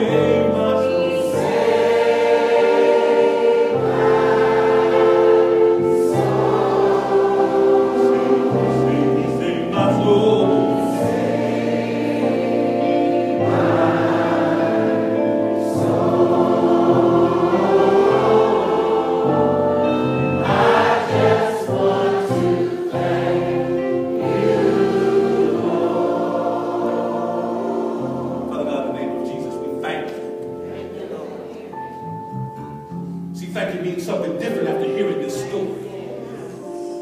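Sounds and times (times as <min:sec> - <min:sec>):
group singing a hymn: 0:00.0 - 0:32.0, 0:34.6 - 0:37.0.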